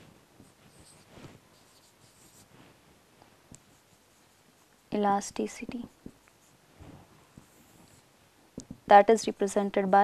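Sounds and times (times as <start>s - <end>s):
marker pen on whiteboard: 0.4s - 2.5s, 3.5s - 9.7s.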